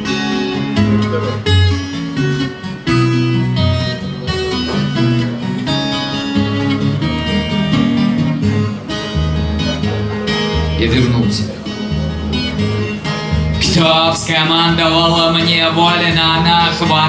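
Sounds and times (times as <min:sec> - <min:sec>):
acoustic guitar strummed chords: 0:00.0 - 0:17.0.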